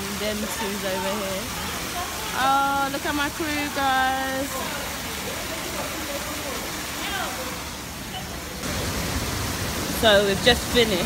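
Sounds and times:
faint distant voices: 0.0 - 8.6
water rushing in pool: 0.0 - 11.0.

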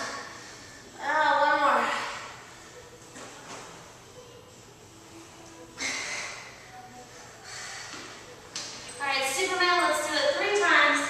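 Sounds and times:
woman breathing heavily: 0.0 - 1.0, 5.6 - 8.4.

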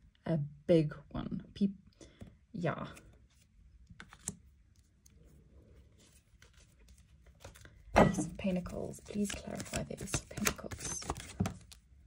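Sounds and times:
cards clicking on tabletop: 4.0 - 4.4, 9.1 - 11.8.

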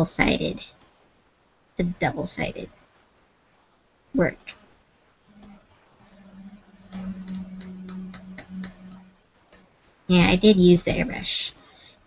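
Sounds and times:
low steady hum: 2.7 - 12.0.

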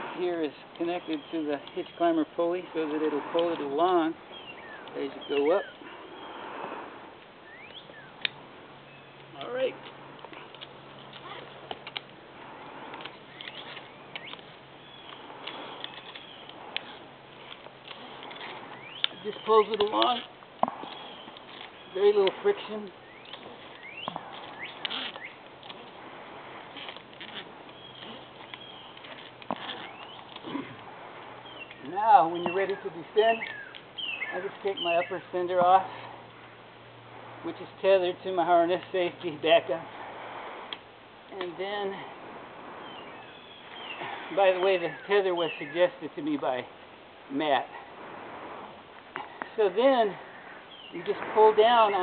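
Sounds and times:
bird chirps: 4.2 - 6.4, 7.4 - 8.2, 8.8 - 9.4, 13.1 - 17.0, 18.6 - 20.0, 20.8 - 22.3, 22.9 - 25.4, 27.7 - 30.4, 31.4 - 35.3, 42.8 - 45.9, 50.3 - 51.1
faint bird chirps: 7.4 - 8.2, 23.0 - 25.4, 31.4 - 35.2.

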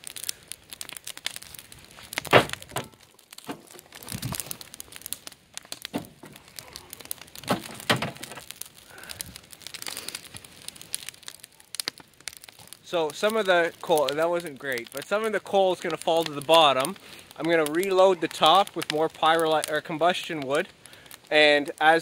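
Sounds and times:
tamper crunching charred wood: 0.0 - 22.0
wood fire crackling: 0.0 - 22.0.

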